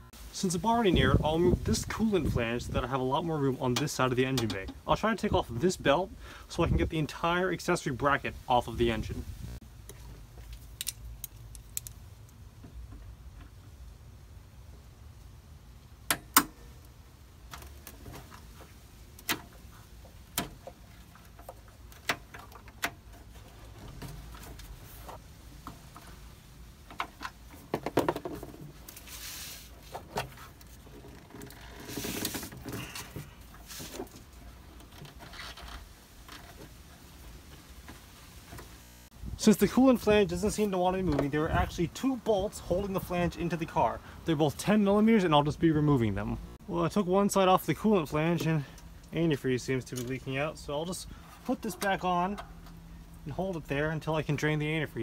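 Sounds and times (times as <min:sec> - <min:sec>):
scraping and rustling: 0:17.6 - 0:38.6.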